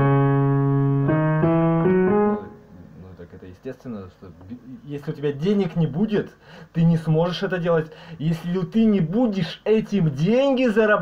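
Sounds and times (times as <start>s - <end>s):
electronic keyboard chords: 0.0s - 2.7s.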